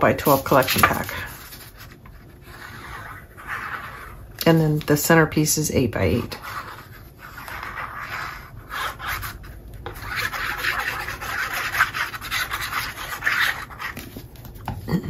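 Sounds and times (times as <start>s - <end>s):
paper rustling: 0.2s - 2.0s
glue nozzle scratching paper: 6.4s - 14.0s.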